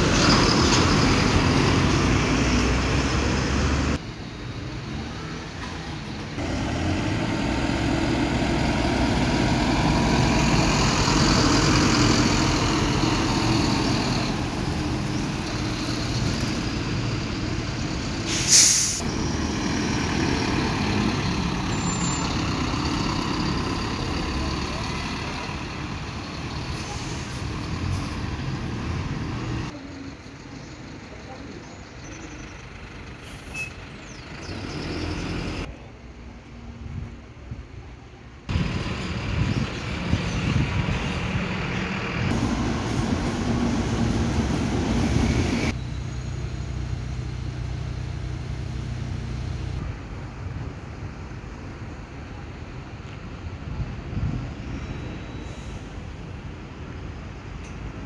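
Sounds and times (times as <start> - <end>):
bus diesel engines running: 0.0 - 58.0
air brakes hissing: 18.2 - 19.1, 55.2 - 56.2.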